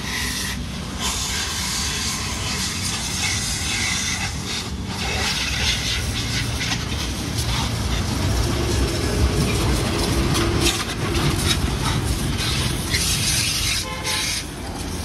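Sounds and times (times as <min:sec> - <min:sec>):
pressure washer pump rumble: 0:00.0 - 0:15.0
water jet spattering: 0:00.2 - 0:15.0.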